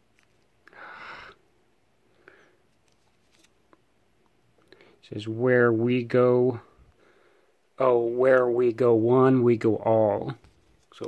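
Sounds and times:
plastic sleeve rustling: 2.7 - 3.6.

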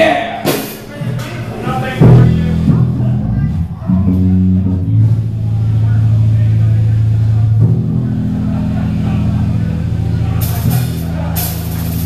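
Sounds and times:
bass guitar: 0.0 - 12.0
distorted electric guitars: 1.4 - 12.0.

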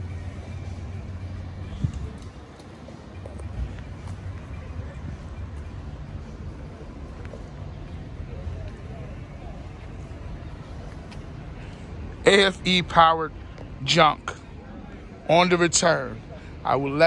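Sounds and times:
vehicle rumble: 0.0 - 17.0.

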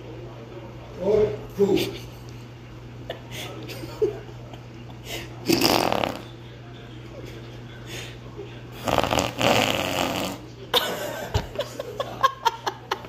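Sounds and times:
raspy fluttering fart: 5.5 - 6.3, 8.8 - 10.4.

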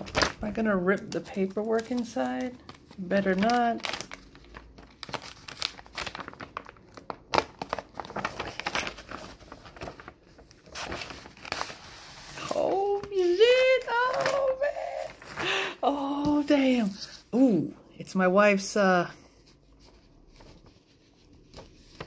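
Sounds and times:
paper wrapper crinkling and tearing: 0.0 - 17.2.

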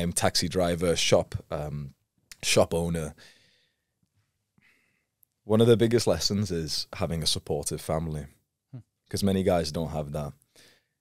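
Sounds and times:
man speaking: 0.0 - 3.2, 5.5 - 10.4
soft breath: 3.2 - 5.2, 10.5 - 11.0.

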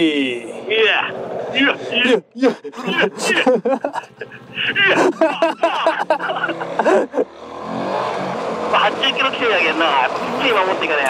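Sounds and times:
motorcycle engine accelerating: 6.0 - 11.0.

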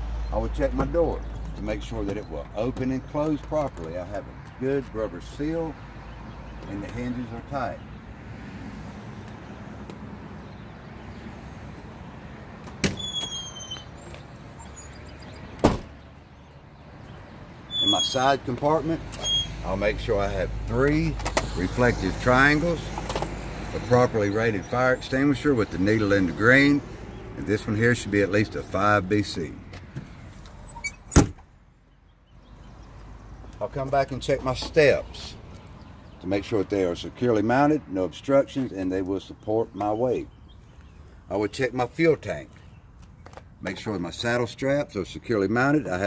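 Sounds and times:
truck door shutting: 12.6 - 13.9, 15.6 - 16.0, 30.8 - 31.4
compartment door banging shut: 15.6 - 16.0.

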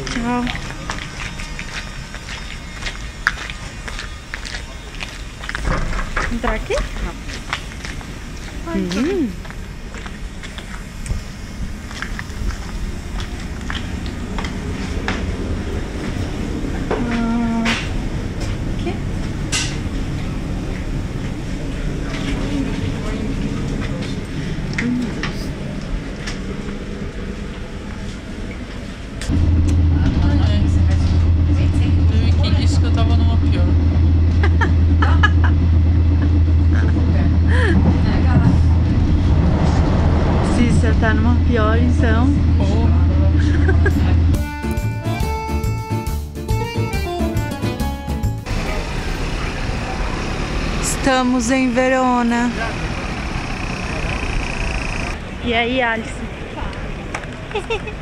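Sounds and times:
low drone of train running: 0.0 - 58.0
train carriage clatter: 0.0 - 58.0.

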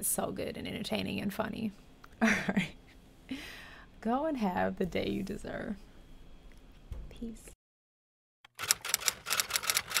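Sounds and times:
typewriter keys clacking: 8.5 - 10.0.

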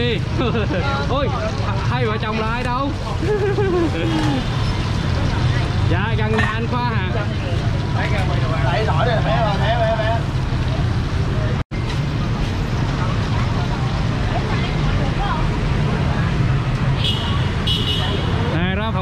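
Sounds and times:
hubbub of nearby voices: 0.0 - 19.0
motorbike and car traffic rumble: 0.0 - 19.0.

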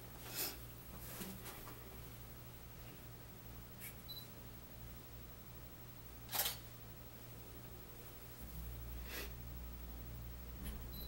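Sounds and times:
camera beep: 6.3 - 6.6
camera shutter click: 6.3 - 6.6.

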